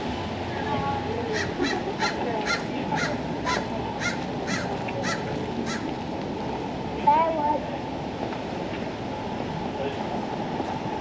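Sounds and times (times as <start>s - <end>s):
street background noise: 0.0s - 11.0s
bird calling: 1.3s - 5.9s.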